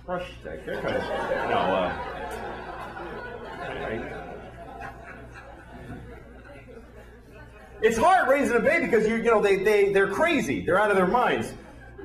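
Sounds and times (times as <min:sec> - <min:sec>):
audience murmuring and laughing: 0:00.6 - 0:08.4, 0:11.5 - 0:12.0
man talking: 0:07.8 - 0:11.6.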